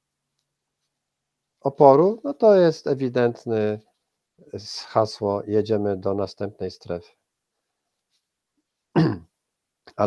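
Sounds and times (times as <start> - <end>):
man clearing his throat: 9.0 - 9.3.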